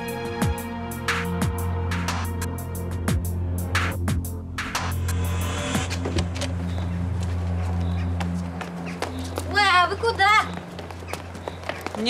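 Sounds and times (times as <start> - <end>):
low background music drone: 0.0 - 10.8.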